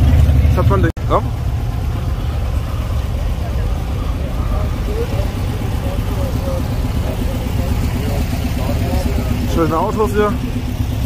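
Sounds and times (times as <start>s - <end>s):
car engine idling: 0.0s - 11.0s
faint talk of people: 2.6s - 10.8s.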